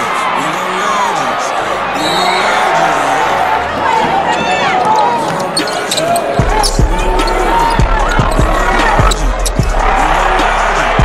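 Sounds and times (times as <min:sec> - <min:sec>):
crowd voices: 0:00.0 - 0:11.0
sneakers squeaking on hardwood: 0:03.7 - 0:09.2
deep bass beat: 0:06.4 - 0:11.0.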